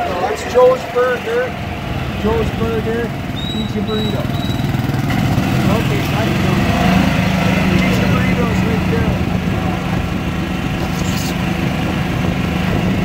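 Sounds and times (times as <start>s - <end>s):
cart motor humming: 0.0s - 13.0s.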